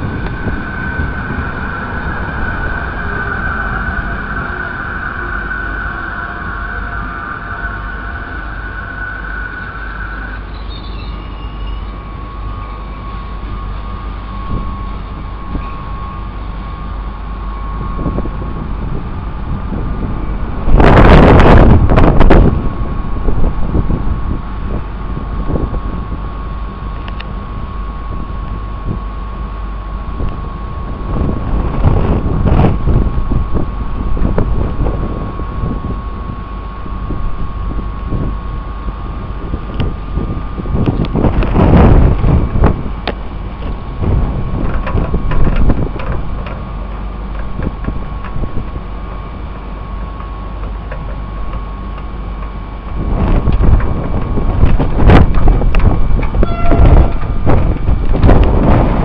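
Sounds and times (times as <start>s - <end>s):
high electric whine: 0.0s - 59.0s
train low rumble: 0.0s - 59.0s.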